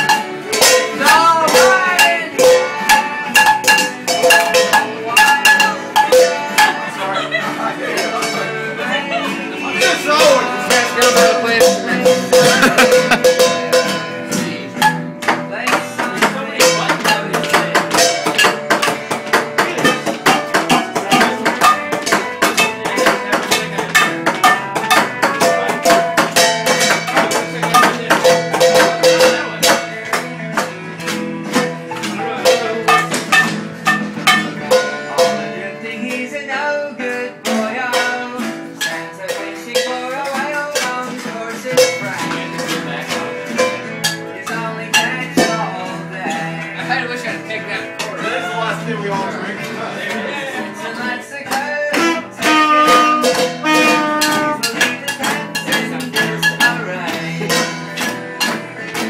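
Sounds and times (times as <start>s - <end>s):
acoustic guitar strumming chords: 0.0s - 59.0s.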